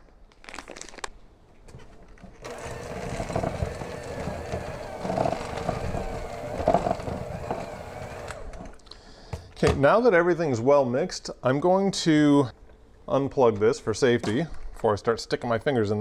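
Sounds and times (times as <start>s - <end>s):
electric hand mixer running: 2.4s - 8.8s.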